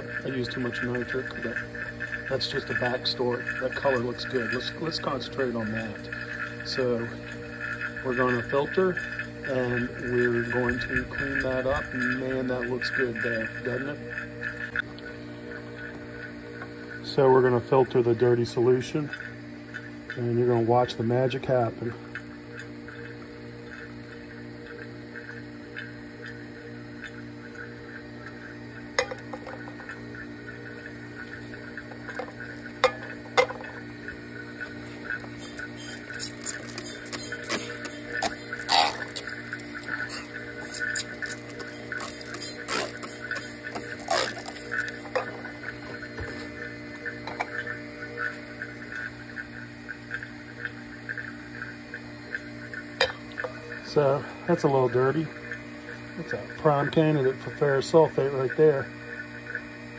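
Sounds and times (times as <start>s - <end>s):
liquid pouring and draining: 0.0s - 59.9s
vacuum pump humming: 0.0s - 59.9s.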